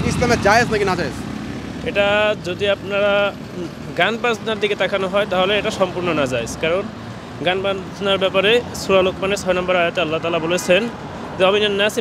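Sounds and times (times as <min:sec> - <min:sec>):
low hum of street traffic: 0:00.0 - 0:12.0
man speaking: 0:01.9 - 0:12.0.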